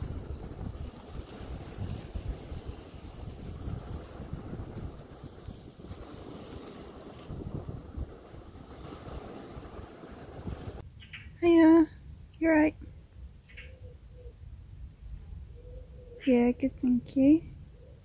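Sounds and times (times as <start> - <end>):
waves washing onto shingle: 0.0 - 10.8
wind buffeting microphone: 0.0 - 10.9.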